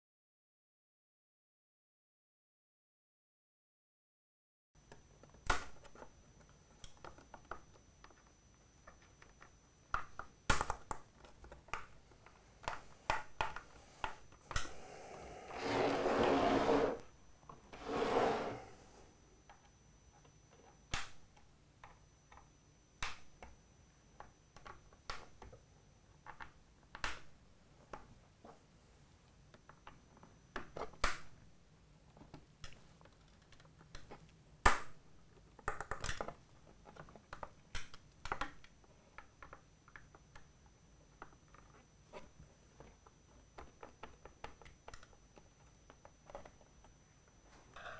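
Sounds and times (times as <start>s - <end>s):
frame scraping on wooden bench: 15.5s - 17.0s, 17.8s - 18.7s.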